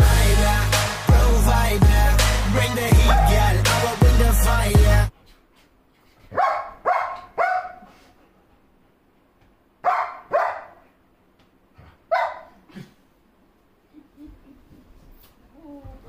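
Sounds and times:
dog barking: 3.1 - 3.4, 6.3 - 7.9, 9.8 - 10.8, 12.1 - 12.6.

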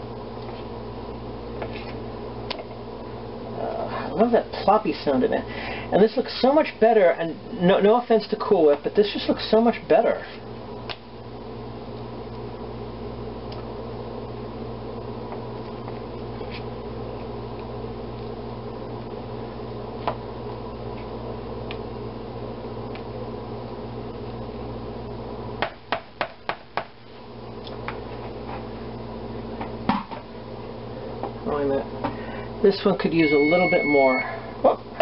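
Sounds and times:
steady hum: 0.0 - 35.0.

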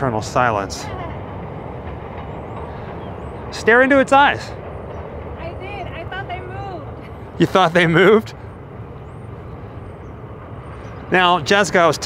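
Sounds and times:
distant train rumble: 0.0 - 12.0.

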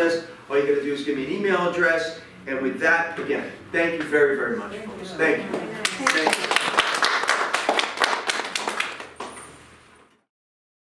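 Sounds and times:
scattered applause: 5.8 - 9.4.

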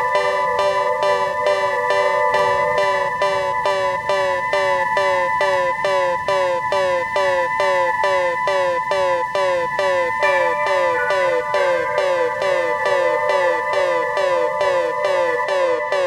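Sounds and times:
held high synth tones: 0.0 - 16.0.

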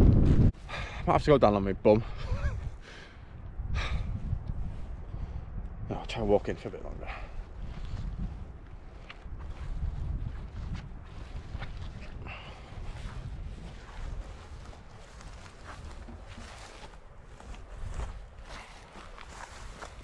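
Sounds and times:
wind buffeting microphone: 0.0 - 20.0
footsteps through wet grass: 6.4 - 20.0.

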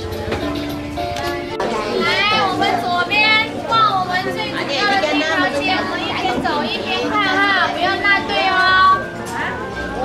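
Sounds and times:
music with held notes: 0.0 - 10.0.

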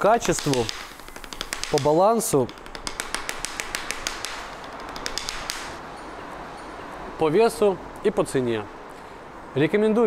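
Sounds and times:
drumsticks tapping practice pad: 0.0 - 5.8.

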